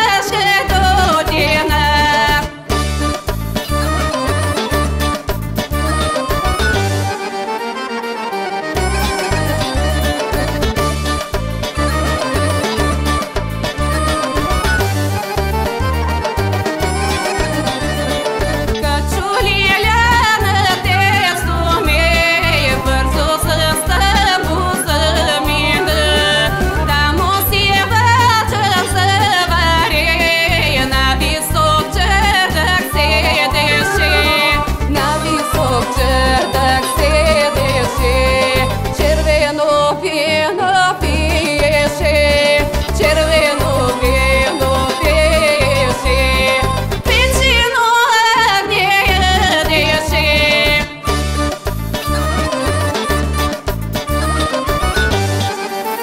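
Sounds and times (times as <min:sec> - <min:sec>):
woman singing folk-pop song: 0:00.0 - 0:02.8, 0:17.6 - 0:51.2
band accompaniment: 0:00.0 - 0:56.0.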